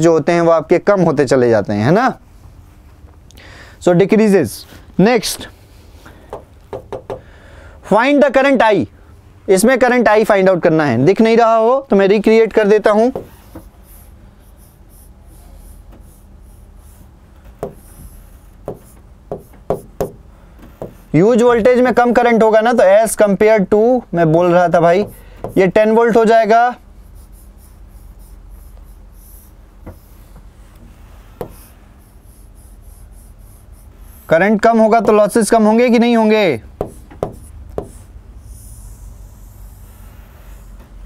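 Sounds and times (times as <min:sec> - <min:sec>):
low steady hum: 0:00.0 - 0:41.0
stylus scratching on touchscreen: 0:13.1 - 0:19.9, 0:20.7 - 0:22.3, 0:24.4 - 0:35.3, 0:36.8 - 0:40.8.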